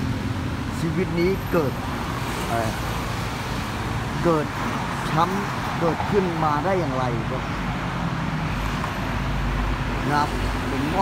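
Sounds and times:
urban traffic rumble: 0.0 - 11.0.

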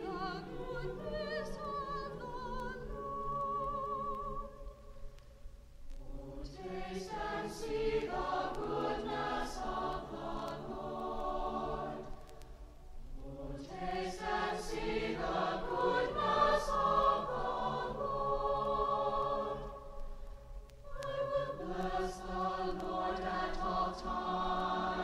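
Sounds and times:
choir singing: 0.0 - 4.8, 6.0 - 12.4, 13.0 - 20.0, 20.8 - 25.0.

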